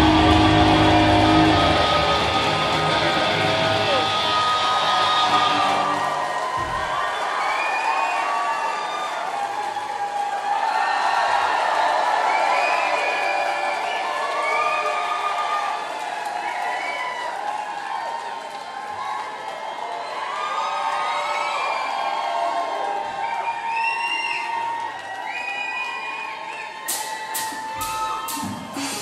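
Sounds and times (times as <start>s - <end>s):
rock band chord ringing: 0.0s - 6.3s
crowd cheering and shouting: 0.0s - 29.0s.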